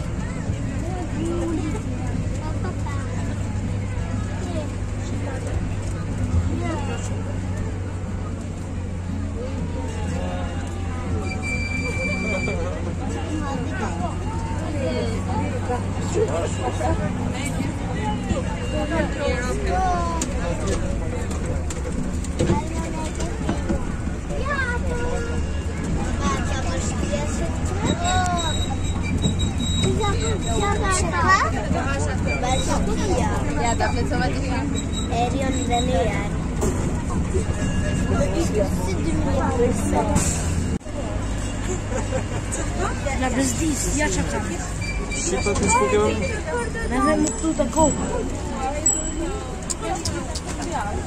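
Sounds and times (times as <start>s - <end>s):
passengers' voices: 0.0s - 51.0s
train rumbling: 0.0s - 51.0s.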